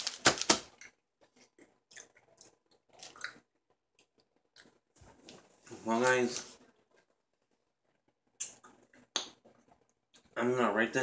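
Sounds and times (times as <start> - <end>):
person chewing crunchy candy: 0.0 - 4.8.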